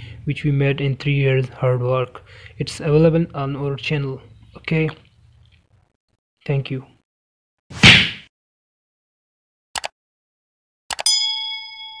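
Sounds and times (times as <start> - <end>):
notification bell ding: 11.0 - 12.0.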